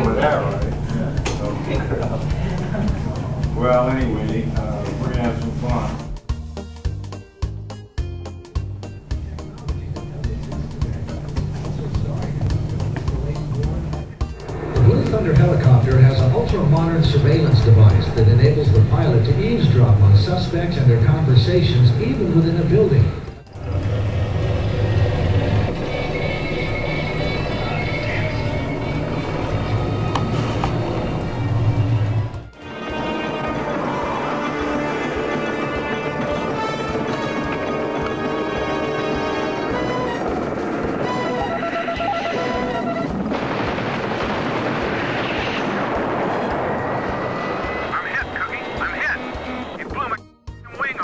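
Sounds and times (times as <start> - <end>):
steady low rumble: 0.0 - 6.3, 8.8 - 51.0
film trailer music: 0.0 - 51.0
loud rushing roar: 10.7 - 50.2.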